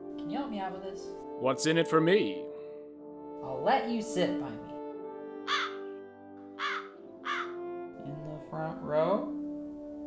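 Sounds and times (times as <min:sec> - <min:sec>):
background music held notes: 0:00.0 - 0:10.0
bird calling: 0:05.5 - 0:05.8, 0:06.6 - 0:07.6.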